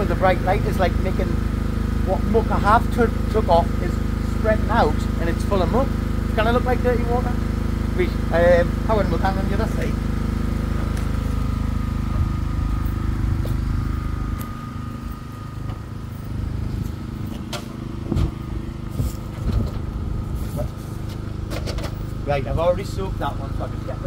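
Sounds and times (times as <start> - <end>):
engine humming: 0.0 - 24.0.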